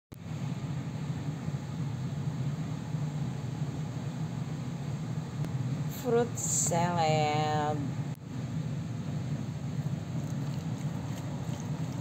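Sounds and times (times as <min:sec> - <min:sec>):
low background hum: 0:00.1 - 0:12.0.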